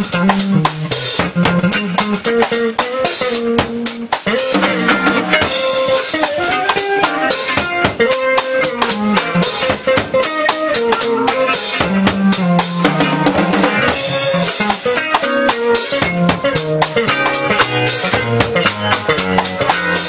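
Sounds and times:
drum kit with snare and rimshots: 0.0 - 20.0
electric bass line: 0.0 - 20.0
electric guitar: 0.0 - 20.0
funk jazz band playing: 0.0 - 20.0.

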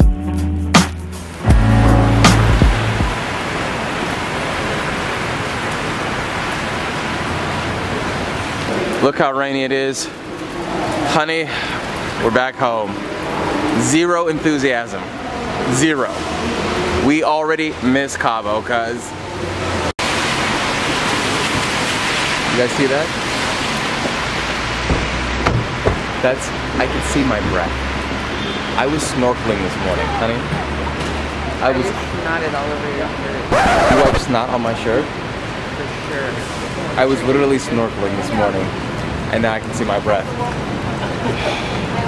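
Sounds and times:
background music with a beat: 0.0 - 3.2
car traffic on wet pavement: 2.0 - 42.0
rain hiss: 2.2 - 18.7, 20.0 - 42.0.

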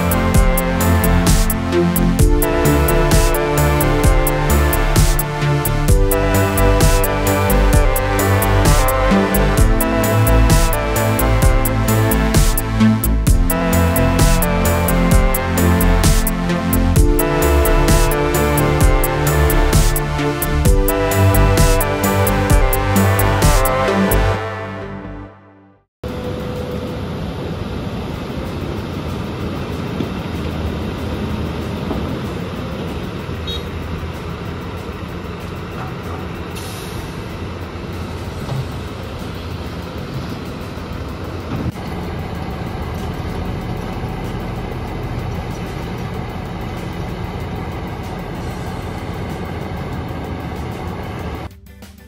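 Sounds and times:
excavator diesel engine: 0.0 - 25.4, 26.1 - 52.0.

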